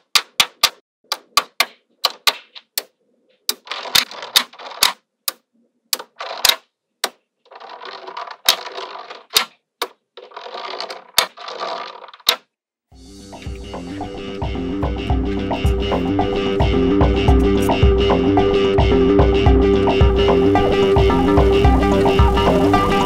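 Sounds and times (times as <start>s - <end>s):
magnetic balls clattering: 0.0s - 12.5s
magnetic balls clicking: 0.0s - 12.5s.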